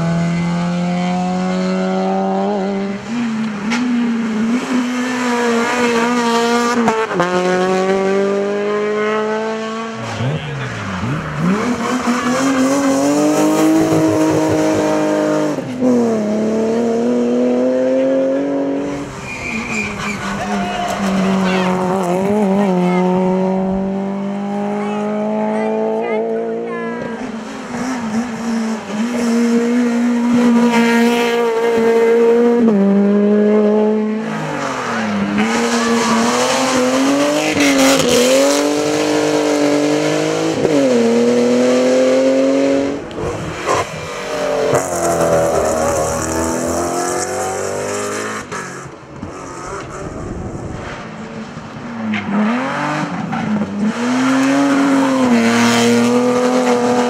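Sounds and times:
racing car engines revving: 0:00.0 - 0:57.0.

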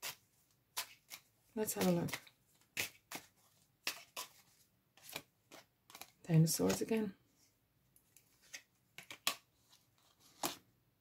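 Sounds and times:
cards being shuffled: 0:00.0 - 0:07.0, 0:08.0 - 0:10.7.

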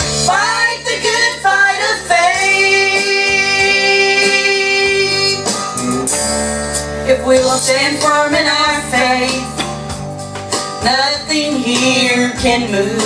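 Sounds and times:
guitar accompaniment: 0:00.0 - 0:13.0
woman singing gospel song: 0:00.2 - 0:05.6, 0:07.1 - 0:09.6, 0:10.8 - 0:13.0.

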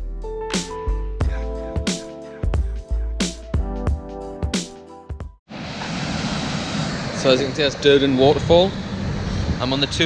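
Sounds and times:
background music: 0:00.0 - 0:05.4
steady rushing outdoor noise: 0:05.5 - 0:10.0.

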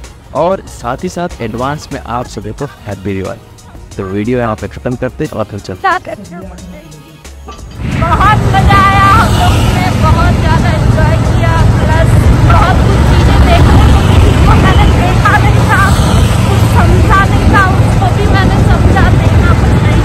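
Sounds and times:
woman's voice: 0:05.8 - 0:07.1, 0:07.9 - 0:20.0
motorbike road rumble: 0:06.0 - 0:20.0
wind on microphone: 0:07.8 - 0:20.0.

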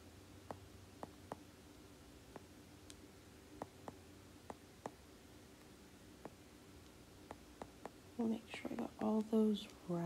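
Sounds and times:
stylus tapping glass screen: 0:00.4 - 0:01.5, 0:02.3 - 0:03.0, 0:03.6 - 0:05.0, 0:07.2 - 0:08.0.

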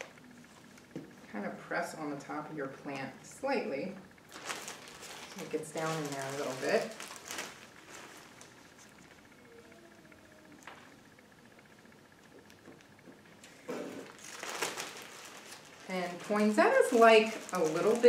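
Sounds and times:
plastic bag rustling: 0:04.3 - 0:09.0, 0:13.6 - 0:18.0.

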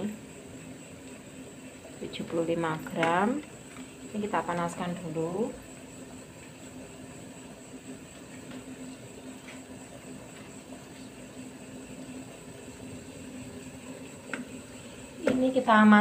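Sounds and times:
faint hum: 0:00.0 - 0:16.0
steady low hiss of heating pan: 0:00.0 - 0:16.0.

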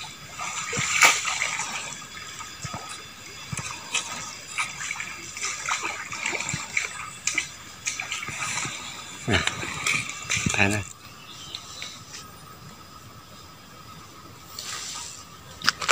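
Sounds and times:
water sloshing and splashing: 0:00.0 - 0:12.8.

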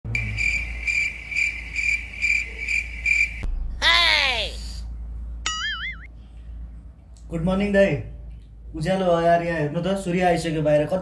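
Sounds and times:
cricket chirping: 0:00.1 - 0:03.5.

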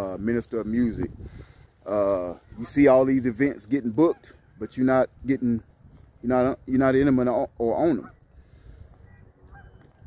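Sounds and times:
wind rumble on microphone: 0:00.0 - 0:03.4, 0:04.3 - 0:10.0
distant bird calls: 0:03.8 - 0:05.0, 0:07.9 - 0:10.0.

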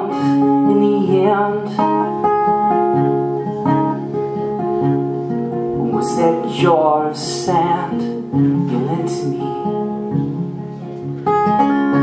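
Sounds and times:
acoustic guitar: 0:00.0 - 0:12.0.

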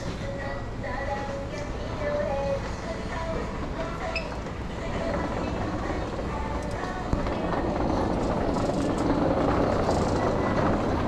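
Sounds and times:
store indoor ambience: 0:00.0 - 0:11.0.

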